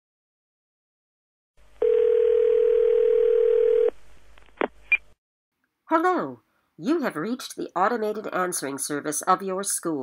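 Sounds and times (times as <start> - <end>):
telephone line tone: 1.8 - 4.0.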